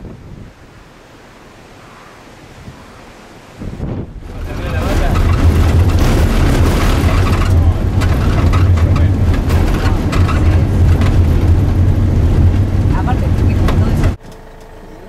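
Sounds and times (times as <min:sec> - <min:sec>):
bus engine and tyres droning: 0:02.8 - 0:15.0
gravel rattling and crunching: 0:04.0 - 0:14.2.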